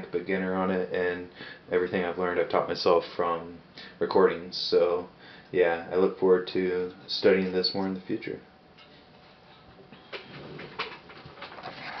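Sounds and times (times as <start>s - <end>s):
soft rustle: 8.8s - 12.0s.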